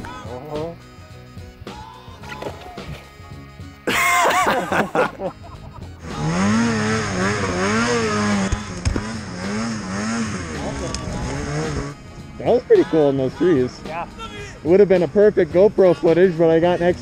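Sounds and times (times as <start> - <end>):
snowmobile engine revving: 3.9 - 12.0.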